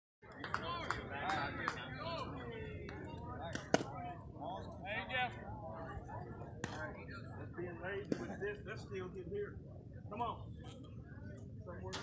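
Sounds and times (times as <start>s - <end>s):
people talking and calling out: 0.2s - 12.0s.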